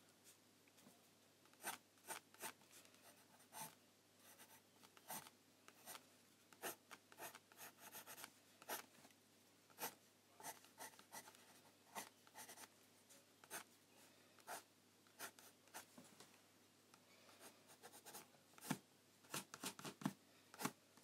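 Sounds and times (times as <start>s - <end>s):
pencil scratching on paper: 1.6s - 6.0s, 6.6s - 8.8s, 9.8s - 12.7s, 15.2s - 15.9s, 17.4s - 20.0s.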